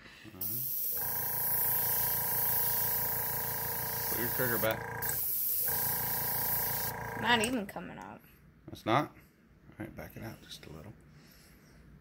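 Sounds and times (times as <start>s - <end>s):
airbrush hissing air: 0.4s - 7.2s.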